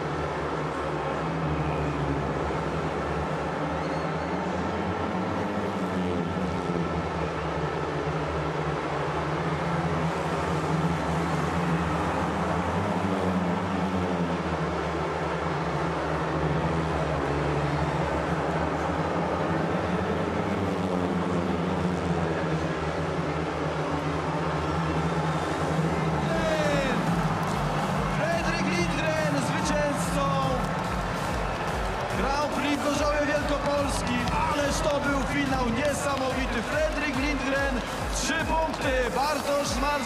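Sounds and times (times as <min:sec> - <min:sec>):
crowd shouting: 0:24.4 - 0:40.0
music with a steady beat: 0:26.2 - 0:40.0.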